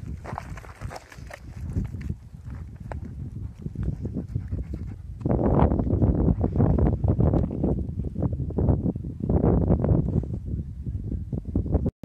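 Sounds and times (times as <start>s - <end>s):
dog panting rapidly: 3.4s - 5.2s.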